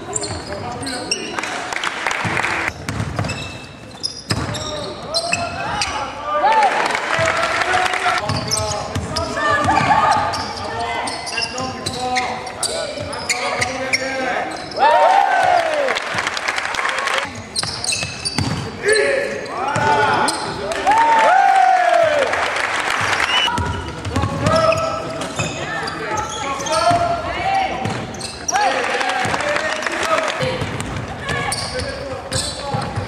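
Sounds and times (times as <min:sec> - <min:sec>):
sneakers squeaking: 0:00.0 - 0:01.6, 0:02.7 - 0:06.2, 0:08.2 - 0:15.0, 0:17.2 - 0:20.8, 0:23.1 - 0:29.4, 0:30.4 - 0:33.0
basketball dribbling: 0:02.2 - 0:03.5.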